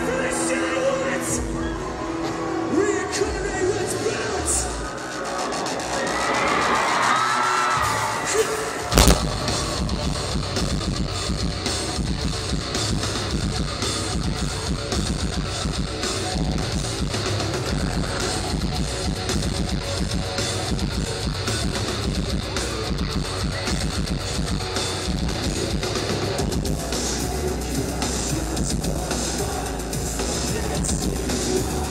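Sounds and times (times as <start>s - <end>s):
drums: 0.0s - 31.9s
distorted electric guitars: 8.9s - 31.9s.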